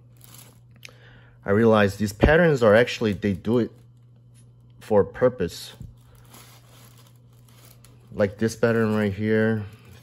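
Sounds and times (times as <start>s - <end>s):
low steady hum: 0.0s - 10.0s
rustling and handling noise: 0.0s - 10.0s.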